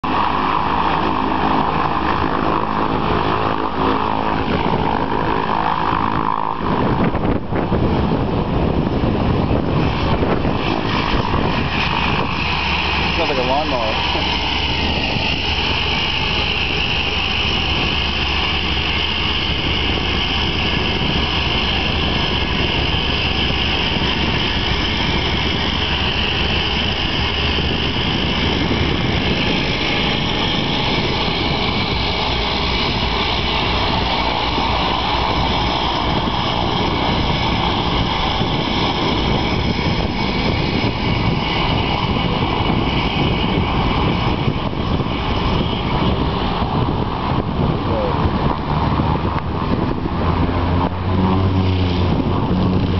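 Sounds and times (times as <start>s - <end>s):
propeller engine running: 0.0s - 52.9s.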